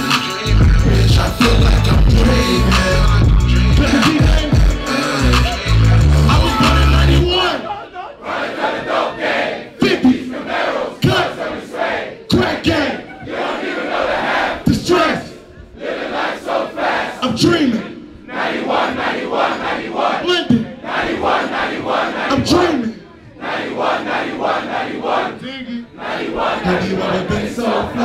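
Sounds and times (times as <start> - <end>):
crowd chanting: 0.0 - 28.0.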